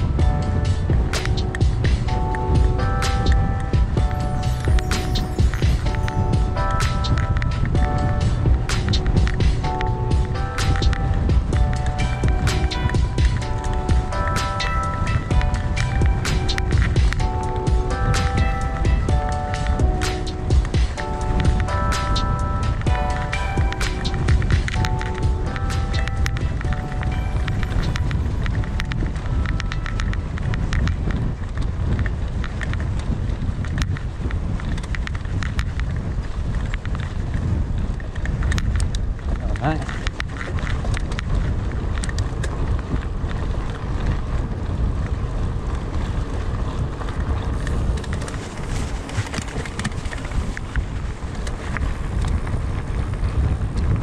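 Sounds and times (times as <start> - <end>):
background music: 0.0 - 31.1
bike tyre rumble: 0.0 - 54.0
wind on microphone: 0.0 - 54.0
rattling clicks from bike: 0.1 - 4.0, 5.3 - 54.0.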